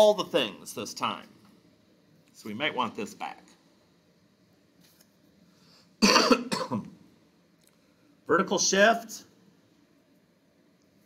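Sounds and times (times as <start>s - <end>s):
man coughing: 6.0s - 6.9s.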